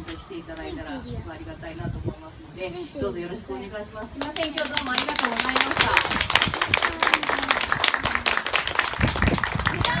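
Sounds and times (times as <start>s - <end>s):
people applauding: 4.2s - 10.0s.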